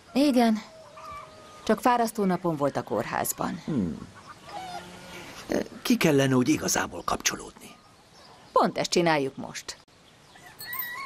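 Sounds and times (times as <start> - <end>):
quiet outdoor ambience: 0.0 - 11.0
farmyard fowl call: 4.4 - 5.3.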